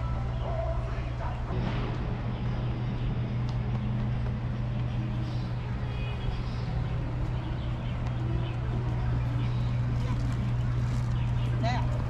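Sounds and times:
distant road traffic hum: 0.0 - 12.0
faint voices: 4.8 - 12.0.

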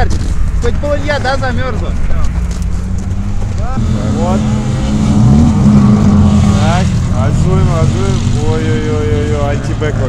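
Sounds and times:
car engine droning: 0.2 - 10.0.

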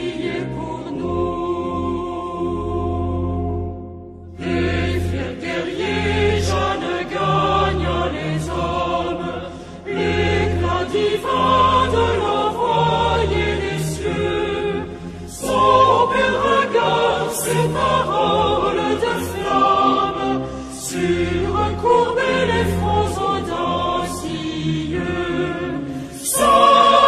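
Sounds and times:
choir singing religious song: 0.0 - 27.0.

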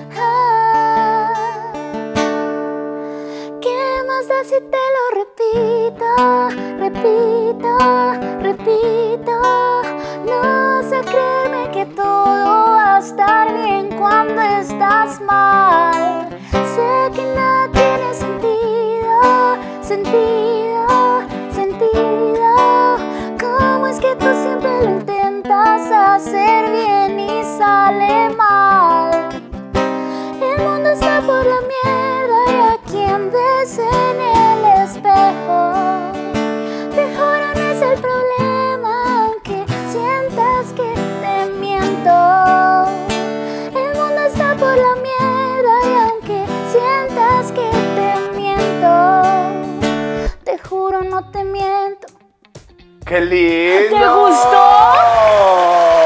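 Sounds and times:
woman singing a pop ballad: 0.0 - 2.1, 3.3 - 52.3, 53.9 - 55.4
strummed acoustic guitar: 0.0 - 3.8, 5.6 - 51.8.

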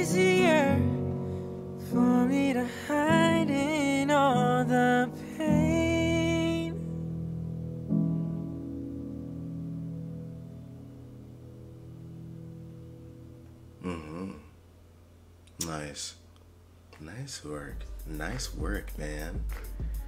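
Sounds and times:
man singing ballad: 0.0 - 1.2, 1.8 - 6.9.

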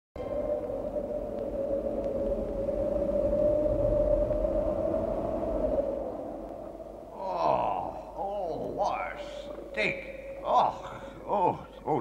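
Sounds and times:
low rumble: 0.2 - 10.4.

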